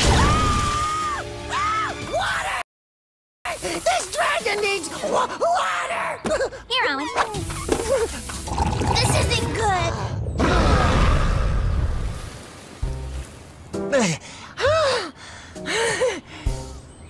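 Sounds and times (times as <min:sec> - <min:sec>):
background music: 0:00.6 - 0:02.6, 0:12.7 - 0:17.0.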